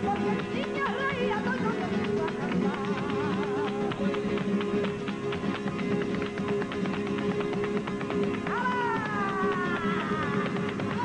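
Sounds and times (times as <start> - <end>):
dance shoes striking wooden stage: 0.0 - 11.0
flamenco guitars playing: 0.0 - 11.0.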